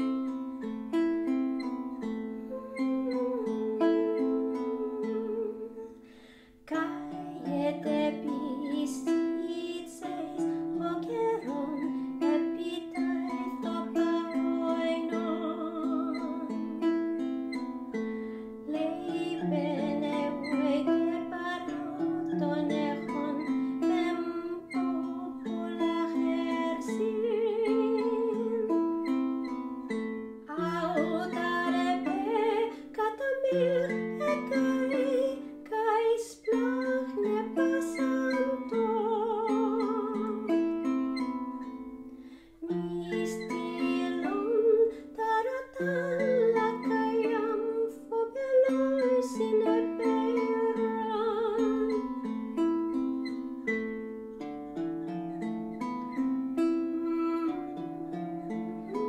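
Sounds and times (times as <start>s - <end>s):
woman singing: 0.0s - 42.0s, 42.6s - 54.0s, 55.4s - 59.0s
plucked lyre: 0.0s - 59.0s.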